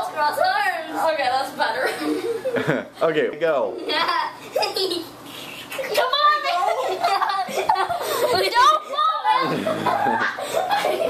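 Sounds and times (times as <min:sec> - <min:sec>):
excited children's voices: 0:00.0 - 0:02.2, 0:03.8 - 0:11.0
people laughing: 0:01.8 - 0:02.9, 0:04.4 - 0:11.0
deep chuckle: 0:09.4 - 0:11.0.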